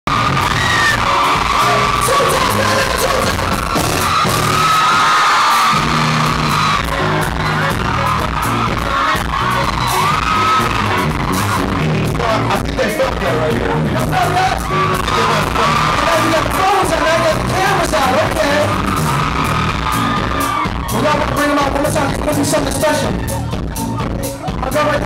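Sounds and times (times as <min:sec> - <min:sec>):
audience yelling and screaming: 0:00.0 - 0:25.0
live pop band: 0:00.1 - 0:25.0.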